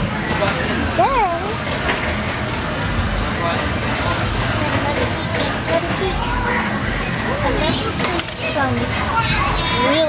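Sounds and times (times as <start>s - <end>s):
children talking and playing: 0.0s - 10.0s.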